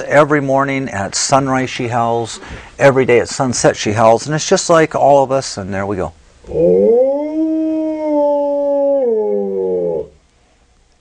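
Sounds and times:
wolf howling: 6.5s - 10.2s.

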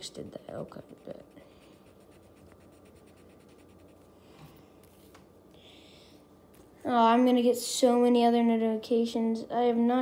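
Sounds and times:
pencil shading on paper: 0.6s - 4.1s.

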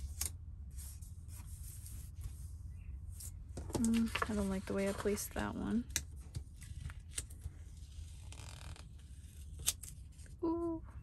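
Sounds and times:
soft papery rustle: 0.0s - 10.6s.

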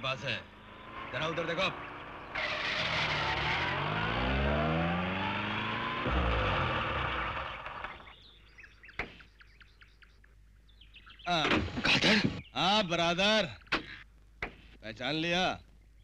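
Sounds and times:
faint bird chirping: 0.0s - 2.4s, 7.3s - 11.4s, 12.1s - 16.0s
van engine revving: 0.0s - 8.2s.

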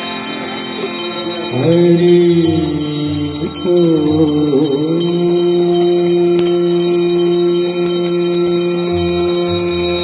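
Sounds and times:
bells ringing: 0.0s - 10.0s
low drone: 0.0s - 10.0s.

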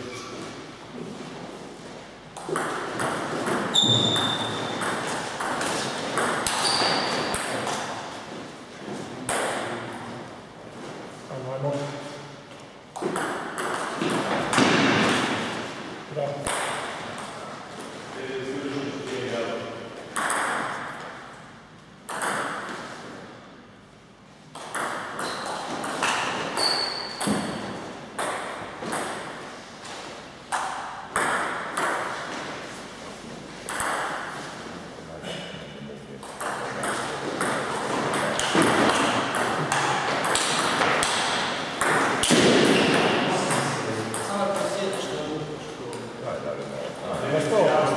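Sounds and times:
table tennis ball hitting floor: 2.4s - 8.0s, 9.3s - 9.8s, 12.9s - 15.7s, 16.4s - 17.4s, 20.1s - 21.2s, 22.1s - 22.9s, 24.5s - 29.4s, 30.5s - 32.6s, 33.7s - 34.5s, 36.2s - 45.1s.

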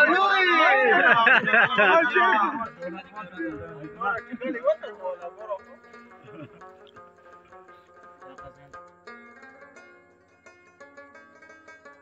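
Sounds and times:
man talking loudly: 0.0s - 5.8s.

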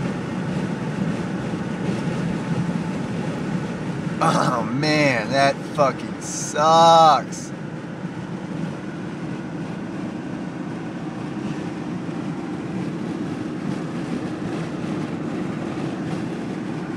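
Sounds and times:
low vehicle rumble: 0.0s - 16.9s.

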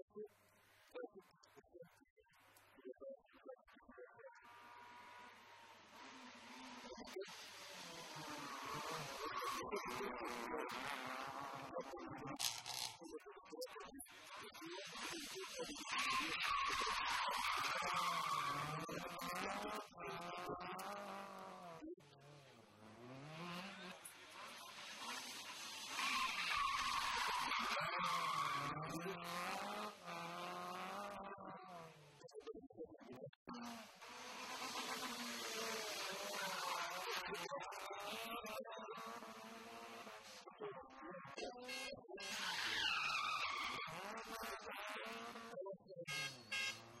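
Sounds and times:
rally car engine revving: 4.4s - 13.0s, 14.1s - 32.2s, 33.6s - 40.4s, 41.3s - 47.0s
car engine revving hard: 10.3s - 11.6s, 17.8s - 24.1s, 28.0s - 31.8s, 33.8s - 37.0s
tyre squeal: 25.1s - 28.9s, 42.3s - 44.0s.

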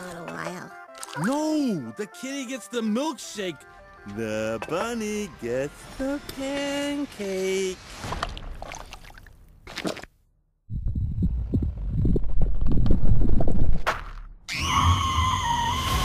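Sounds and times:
low crackling rumble: 10.7s - 13.9s.

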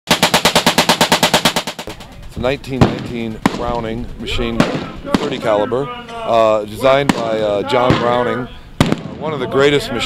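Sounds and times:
machine gun firing burst: 0.1s - 3.7s.

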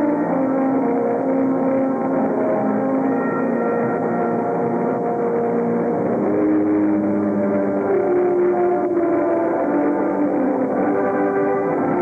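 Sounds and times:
marching band brass chords: 0.0s - 12.0s.

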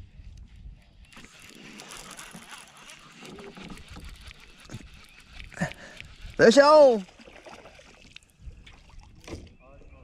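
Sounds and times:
fishing reel ticking whir: 0.8s - 7.1s.

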